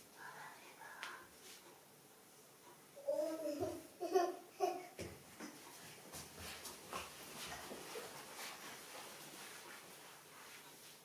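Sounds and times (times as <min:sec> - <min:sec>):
faint whispering: 0:00.1 - 0:01.4.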